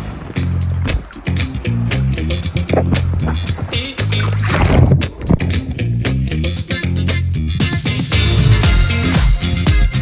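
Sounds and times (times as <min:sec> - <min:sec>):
background music with beat: 0:00.0 - 0:04.4, 0:05.0 - 0:10.0
water sloshing and splashing: 0:00.0 - 0:05.8.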